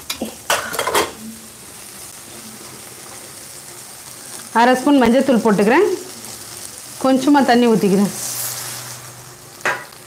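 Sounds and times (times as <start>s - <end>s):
frying sizzle: 0.0s - 10.0s.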